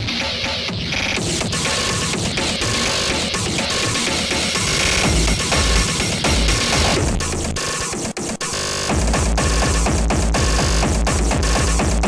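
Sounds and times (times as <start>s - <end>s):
harsh distorted electronic noise: 0.0s - 12.0s
fast distorted kick drum: 0.7s - 8.2s, 8.9s - 12.0s.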